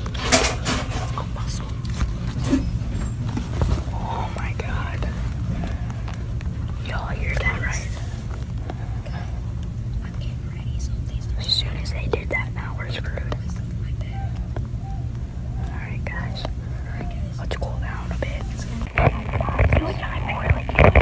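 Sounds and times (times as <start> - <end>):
whispered voices: 0.0 - 14.6, 15.5 - 21.0
steady low hum: 0.0 - 21.0.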